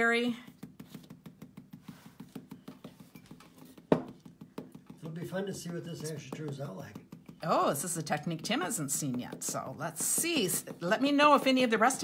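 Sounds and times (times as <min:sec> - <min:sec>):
marker tapping on rubber stamp: 0:00.4 - 0:07.5.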